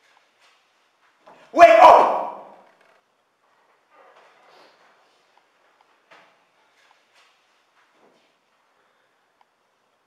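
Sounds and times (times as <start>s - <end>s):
man shouting with room echo: 1.3s - 2.7s.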